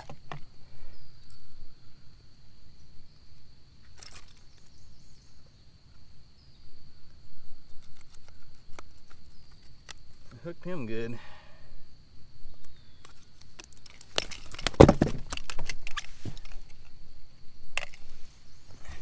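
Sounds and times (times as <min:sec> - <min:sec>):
fishing tackle clicks and knocks: 0:13.0 - 0:16.9, 0:17.8 - 0:18.0.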